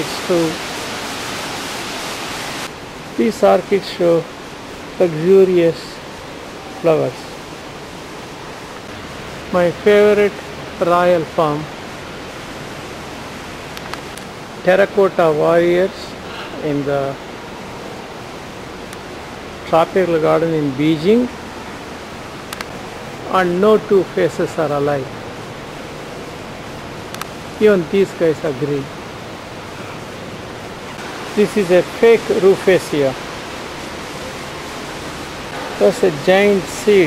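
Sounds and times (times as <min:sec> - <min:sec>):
steady rushing hiss: 0:00.0 - 0:37.0.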